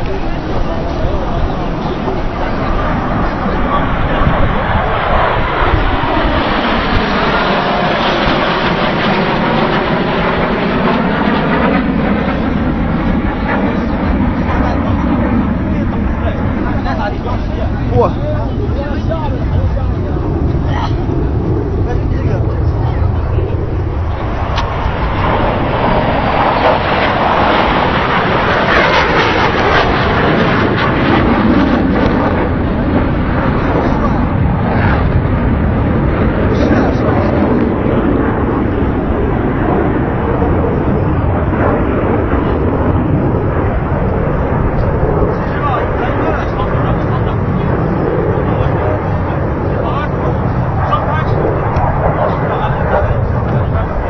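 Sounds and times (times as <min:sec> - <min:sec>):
jet aircraft passing over: 0:00.0 - 0:54.0
spectators talking: 0:00.0 - 0:54.0.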